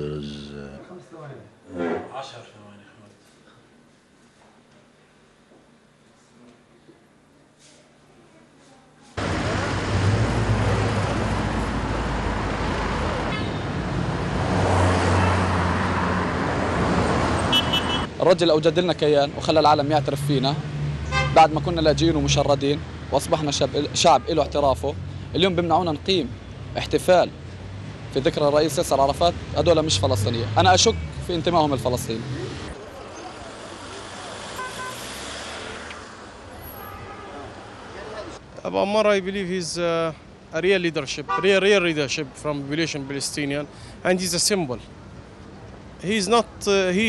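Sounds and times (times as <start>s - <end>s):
cars driving past: 9.2s - 18.1s, 19.8s - 23.8s, 24.6s - 38.4s
busy street traffic: 9.2s - 47.0s
car horn toots: 17.5s - 18.1s, 34.6s - 35.0s.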